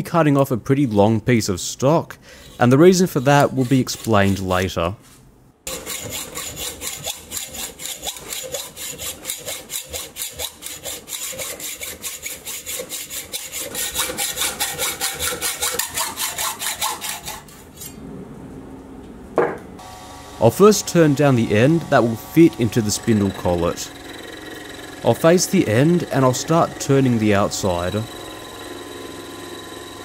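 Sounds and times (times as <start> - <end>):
hacksaw cutting steel: 2.4 - 4.7, 5.7 - 18.0, 20.9 - 28.5
steady hum: 17.3 - 28.6.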